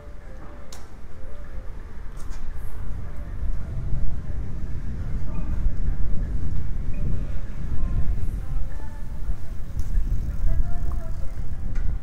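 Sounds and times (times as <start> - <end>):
faint distant voices: 0.0 - 12.0
low street rumble: 0.0 - 12.0.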